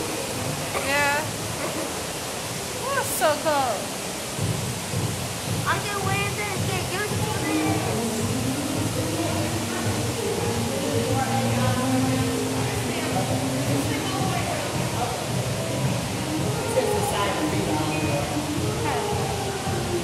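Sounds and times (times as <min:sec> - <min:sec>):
echoing voices: 0:00.0 - 0:20.0
pool water rushing: 0:00.0 - 0:20.0.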